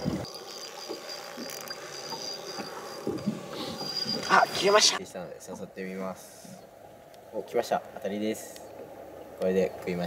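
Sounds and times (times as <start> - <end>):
faint high whine: 0.0 - 5.2.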